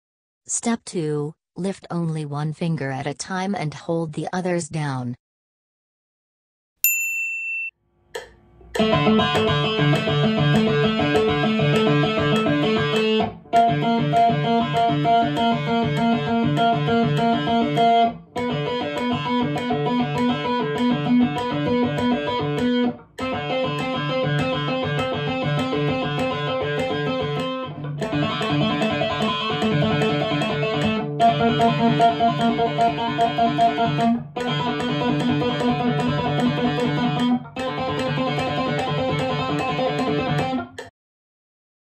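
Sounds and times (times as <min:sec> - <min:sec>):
short high chime: 0:06.8 - 0:07.7
electric guitar picked notes: 0:08.6 - 0:40.8.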